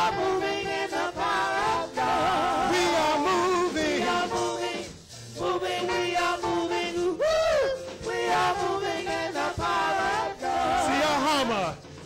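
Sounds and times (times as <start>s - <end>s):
gospel choir singing: 0.0s - 12.0s.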